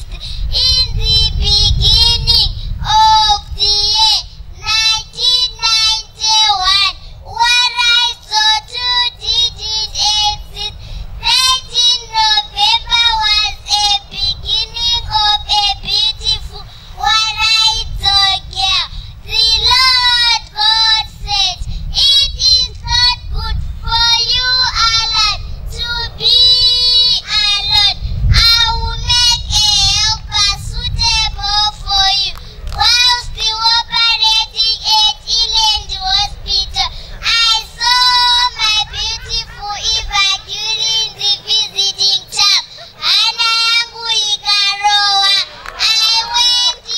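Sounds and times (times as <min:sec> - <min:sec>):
girl singing into a microphone: 0:00.0 - 0:46.9.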